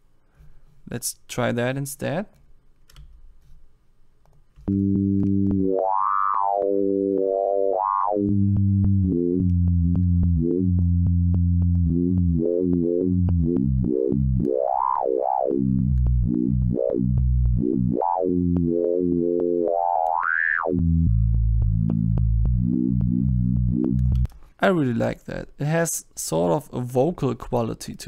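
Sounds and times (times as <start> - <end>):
low sustained synthesizer notes: 4.7 - 24.3.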